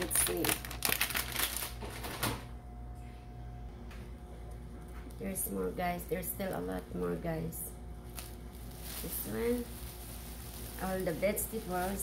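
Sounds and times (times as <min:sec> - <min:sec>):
plastic bags rustling: 0:00.0 - 0:02.3, 0:08.0 - 0:12.0.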